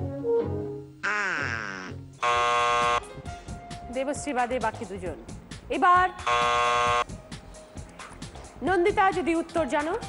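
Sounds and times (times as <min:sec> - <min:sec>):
faint background music: 0:00.0 - 0:10.0
game show buzzer: 0:02.2 - 0:03.1, 0:06.2 - 0:07.1.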